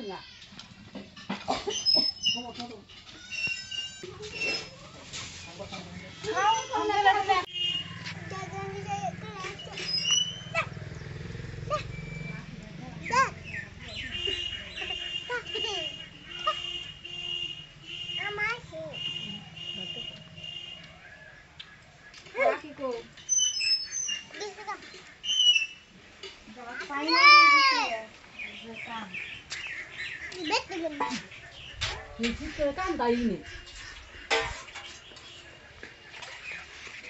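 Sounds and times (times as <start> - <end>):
birds chirping: 0.0 - 37.0
high chirps: 9.6 - 21.0, 23.2 - 24.3.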